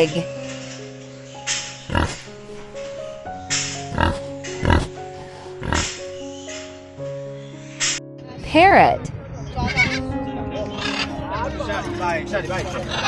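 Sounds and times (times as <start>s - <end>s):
background music with held notes: 0.0s - 13.0s
pig grunting: 1.8s - 2.3s, 3.8s - 6.0s.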